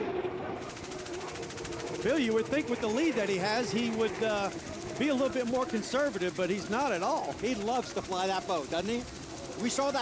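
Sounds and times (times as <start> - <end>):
hydroplane turbine rushing: 0.4 - 10.0.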